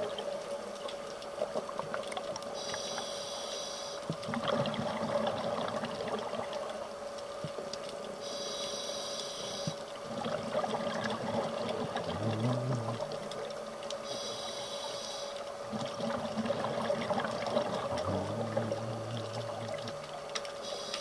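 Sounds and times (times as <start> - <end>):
steady hum: 2.4 - 21.0
scuba regulator inhalation hiss: 2.6 - 4.0, 8.2 - 9.8, 14.0 - 15.4
exhaled bubbles crackling: 4.0 - 8.4, 9.6 - 14.6, 15.3 - 21.0.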